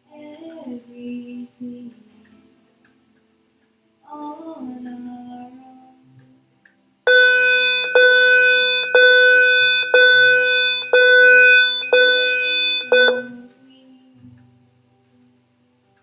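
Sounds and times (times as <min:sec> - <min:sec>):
repeated electronic tone: 0:07.1 - 0:13.4.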